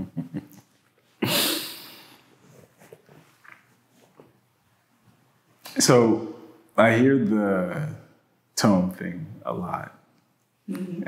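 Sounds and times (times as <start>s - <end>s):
person laughing: 0.0s - 0.6s, 1.2s - 2.1s.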